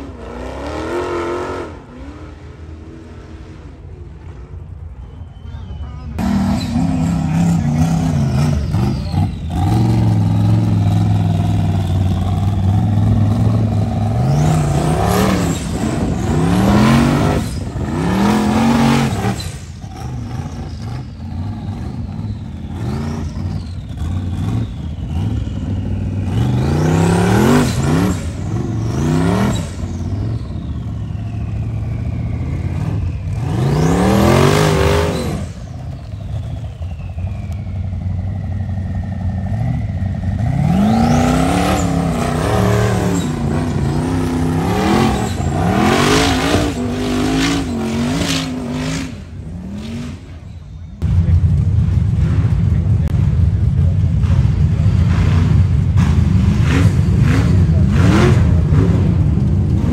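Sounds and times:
buggy engine revving: 0:00.0 - 0:59.9.

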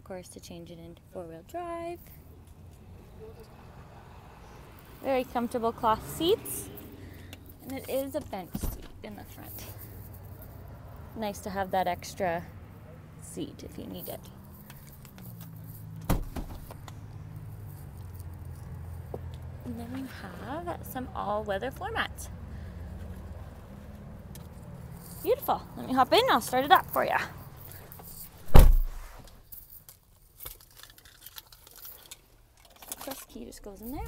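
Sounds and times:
seat back knocks: 0:16.1 - 0:16.7, 0:28.5 - 0:29.0
rustling: 0:27.4 - 0:34.0.

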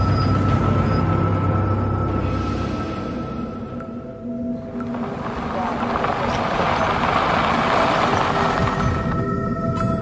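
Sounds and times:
truck engines: 0:00.0 - 0:10.0
tyres on gravel: 0:04.7 - 0:09.4.

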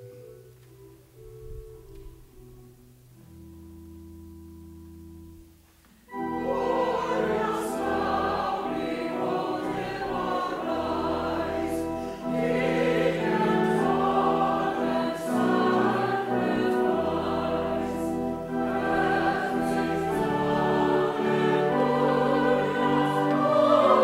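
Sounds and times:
instrumental accompaniment: 0:00.0 - 0:24.0
church choir singing: 0:06.1 - 0:24.0.

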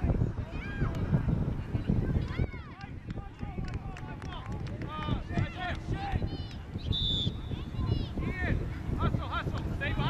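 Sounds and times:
wind rumble on microphone: 0:00.0 - 0:10.0
players and spectators shouting: 0:01.9 - 0:06.5.

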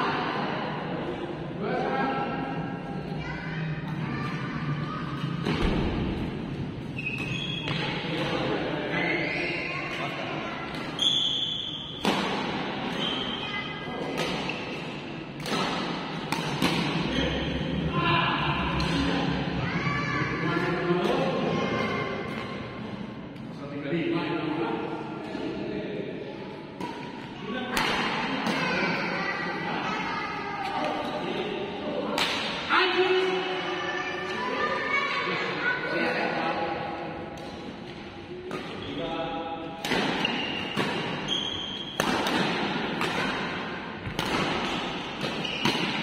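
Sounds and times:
murmur of sports hall: 0:00.0 - 0:46.0
racket hitting shuttlecock: 0:12.0 - 0:13.4, 0:14.0 - 0:17.1, 0:26.8 - 0:28.8, 0:32.1 - 0:32.6, 0:39.7 - 0:46.0.

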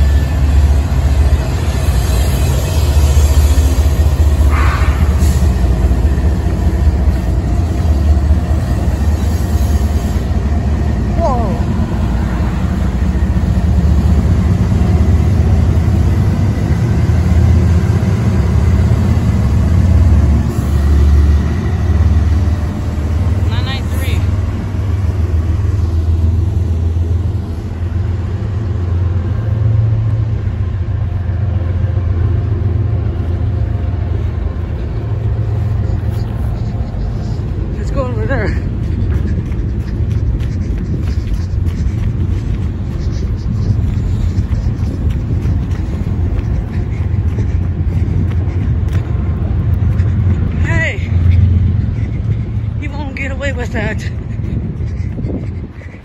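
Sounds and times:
freight train rumbling over bridge: 0:00.0 - 0:56.0.

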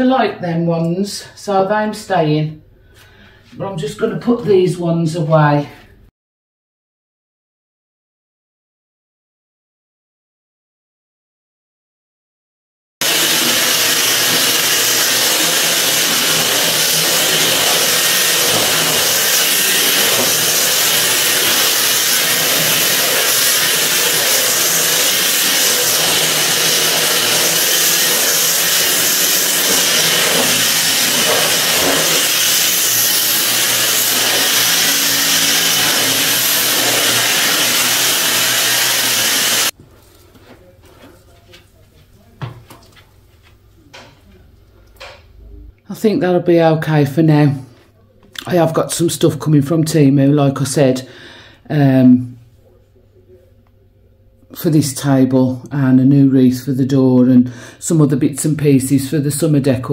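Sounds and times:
stick vacuum cleaner running: 0:13.0 - 0:39.8.

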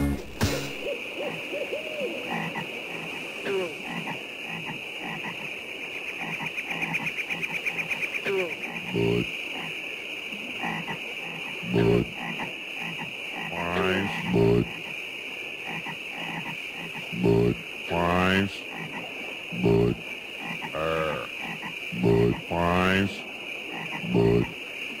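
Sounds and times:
chirping insects: 0:00.0 - 0:25.0
bullfrog croaks: 0:00.8 - 0:25.0
small frog calls: 0:00.8 - 0:25.0.

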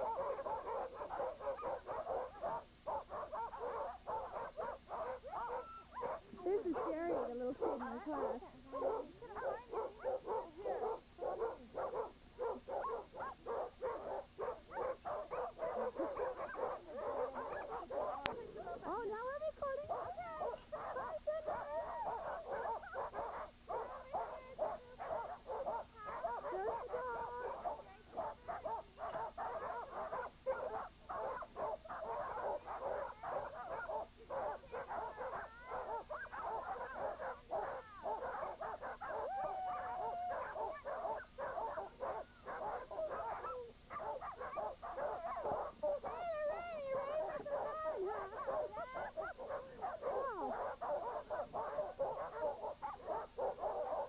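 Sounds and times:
dogs barking and yelping: 0:00.0 - 0:54.0.

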